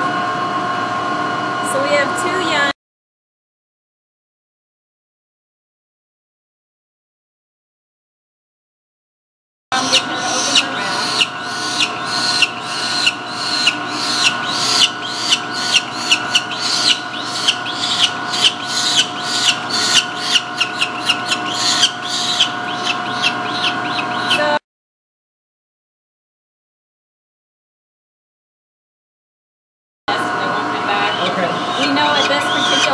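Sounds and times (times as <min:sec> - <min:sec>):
steady hum: 0:09.7 - 0:24.6, 0:30.1 - 0:32.9
falcon chick crying: 0:09.8 - 0:24.6, 0:31.0 - 0:32.9.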